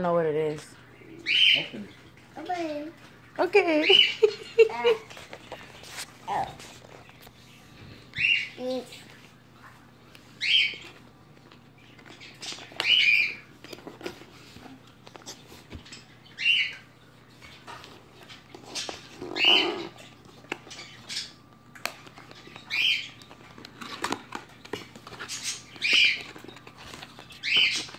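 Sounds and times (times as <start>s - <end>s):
high squawking bird calls: 0.8s - 2.8s, 8.1s - 9.0s, 10.4s - 10.9s, 12.1s - 13.5s, 18.6s - 20.1s, 22.5s - 23.2s, 27.3s - 27.9s
faint clicks and rustles: 4.2s - 16.3s, 20.0s - 27.9s.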